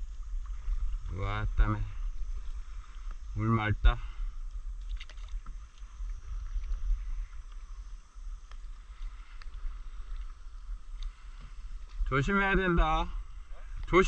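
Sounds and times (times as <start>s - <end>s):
low rumble: 0.0s - 14.0s
light splashes and drips: 4.2s - 12.1s.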